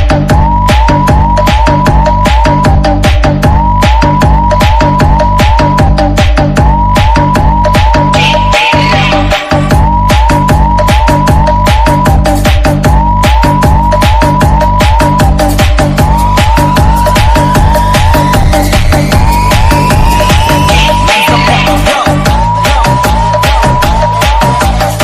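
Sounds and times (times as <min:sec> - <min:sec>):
fast electronic dance beat: 0:00.0 - 0:25.0
siren-like rising synth hook: 0:00.0 - 0:25.0
long rising synth sweep: 0:09.2 - 0:24.2.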